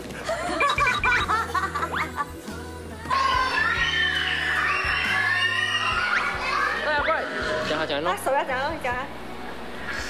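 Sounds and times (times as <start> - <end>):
music playing: 0.0 - 10.0
children talking and calling out: 3.0 - 7.7.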